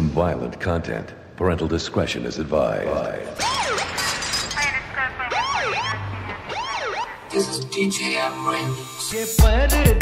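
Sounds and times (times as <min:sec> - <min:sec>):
electronic siren wailing: 0:05.3 - 0:07.4.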